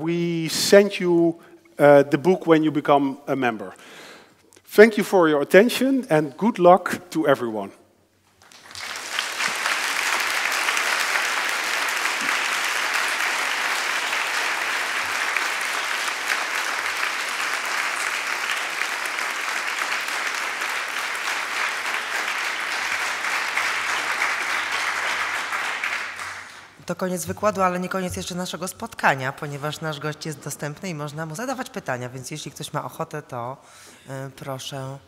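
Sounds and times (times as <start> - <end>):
audience applauding: 8.4 - 26.8.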